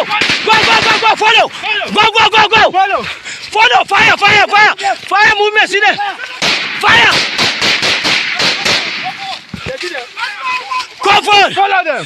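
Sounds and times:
rapid rifle gunfire: 0.0s - 1.2s, 6.4s - 9.4s
men shouting: 0.0s - 7.4s, 8.3s - 12.0s.

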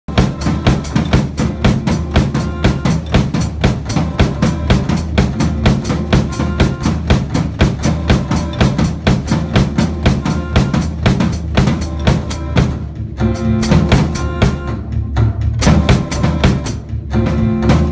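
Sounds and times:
drum kit playing a groove: 0.0s - 17.9s
backing track with bass line: 0.1s - 17.9s.

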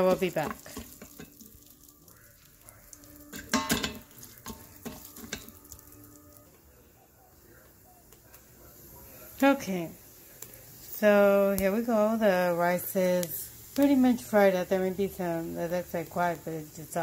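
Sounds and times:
wooden spoon scraping pot: 0.0s - 1.5s
rice sizzling in oil: 0.0s - 17.0s.

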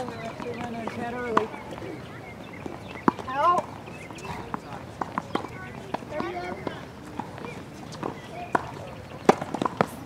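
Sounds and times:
tennis balls knocking on hard court: 0.0s - 1.5s, 4.5s - 10.0s.

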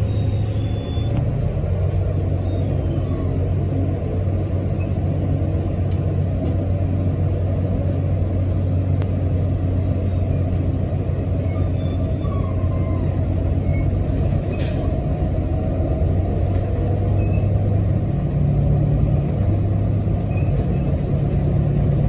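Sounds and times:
high-pitched sliding squeals: 0.0s - 4.9s, 7.9s - 15.7s
bus engine drone: 0.0s - 22.0s.

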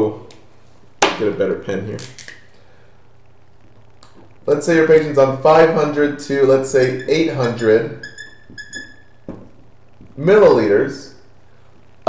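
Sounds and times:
marker squeaking on whiteboard: 5.6s - 10.2s.

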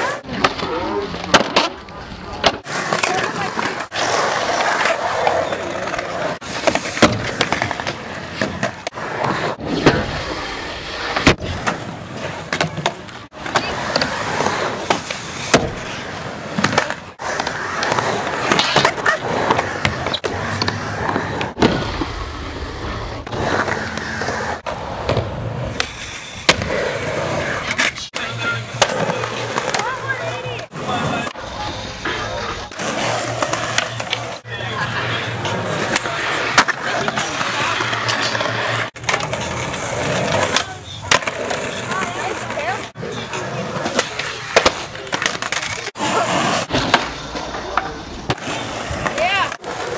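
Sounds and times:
skateboard wheels rolling on concrete: 0.0s - 49.9s
skateboard clacks and landings: 5.6s - 10.2s.

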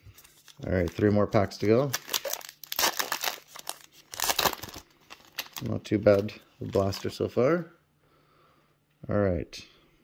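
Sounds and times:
foil wrapper crinkling: 0.1s - 7.2s.

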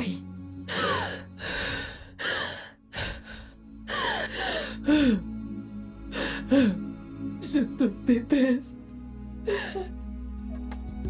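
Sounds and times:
low music bed: 0.0s - 11.0s
woman sobbing: 0.7s - 1.4s, 3.8s - 5.3s, 9.4s - 10.0s.

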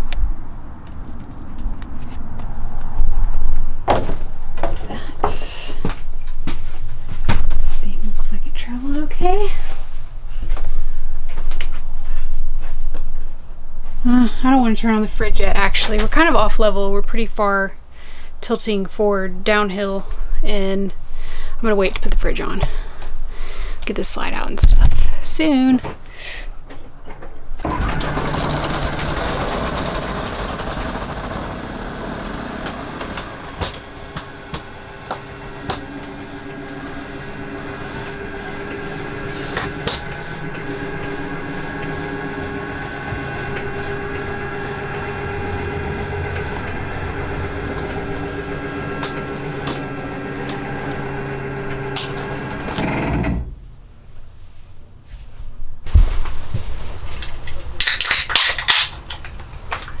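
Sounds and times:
motor humming with clicks: 27.6s - 53.6s.

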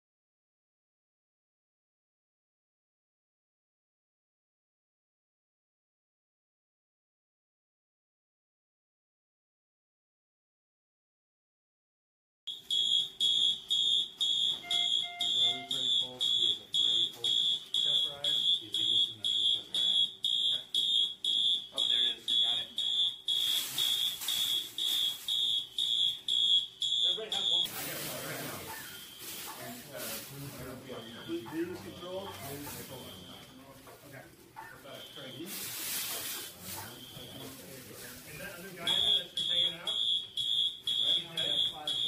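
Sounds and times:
smoke alarm beeping: 12.5s - 33.8s, 34.7s - 42.0s.

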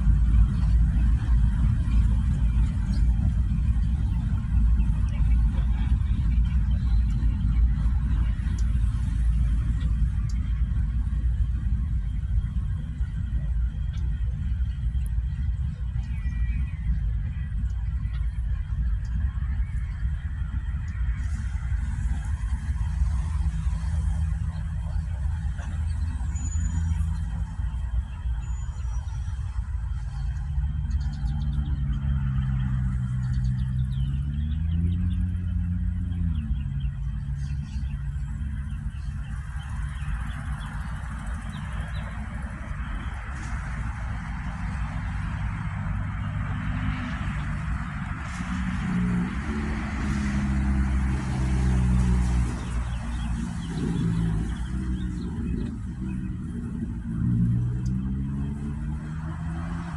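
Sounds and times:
diesel locomotive engine drone: 0.0s - 59.9s.

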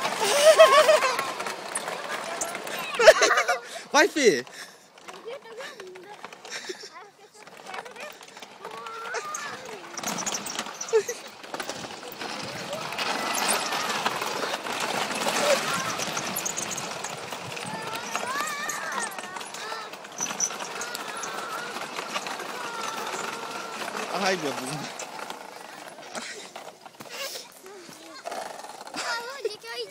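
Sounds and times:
children calling out: 0.0s - 3.9s, 5.1s - 29.9s.

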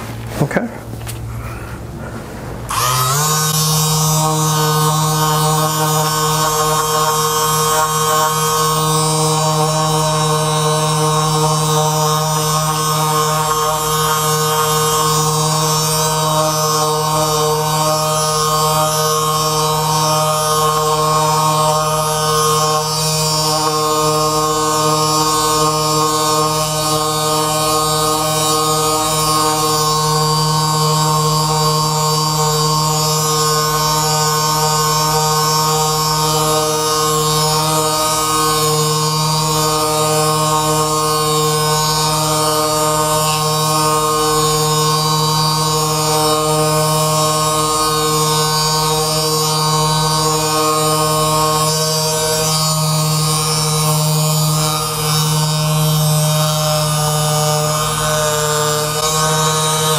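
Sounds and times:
massage gun motor humming: 2.5s - 59.9s.

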